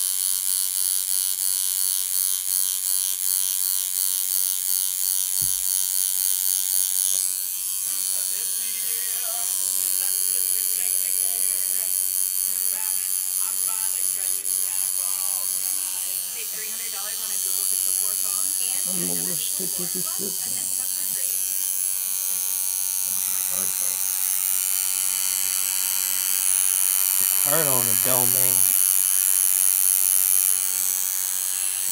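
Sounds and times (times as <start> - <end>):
tattoo machine buzzing: 0.0 - 31.9.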